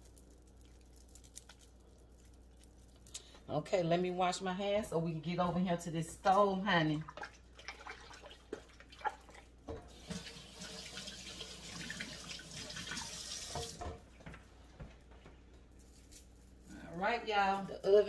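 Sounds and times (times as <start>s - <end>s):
hands washing under water: 6.9s - 14.3s
kitchen faucet running: 9.7s - 14.0s.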